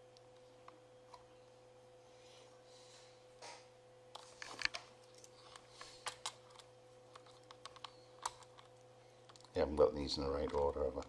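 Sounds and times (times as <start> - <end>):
faint electrical hum: 0.0 - 11.0
small clicks and taps of connectors: 4.2 - 9.6.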